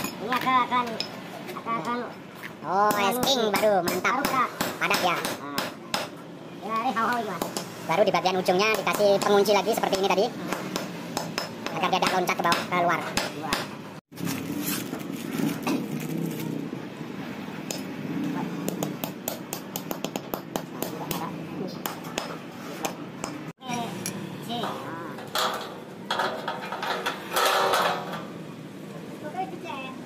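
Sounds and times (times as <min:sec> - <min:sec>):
metal parts clinking: 0:23.7 - 0:28.4.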